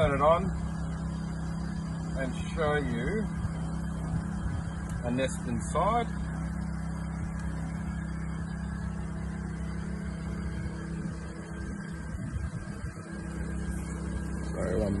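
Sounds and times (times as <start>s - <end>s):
low motor hum: 0.0s - 15.0s.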